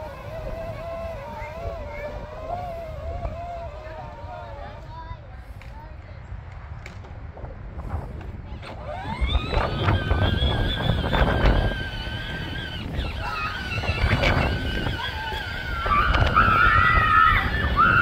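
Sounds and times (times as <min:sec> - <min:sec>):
ride-on toy motor whining: 0:00.0 - 0:04.8, 0:08.5 - 0:18.0
tyres rumbling on grass: 0:08.1 - 0:18.0.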